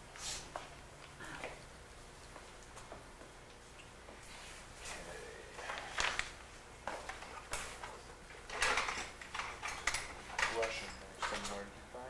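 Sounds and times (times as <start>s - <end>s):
paper rustling: 5.6s - 11.6s.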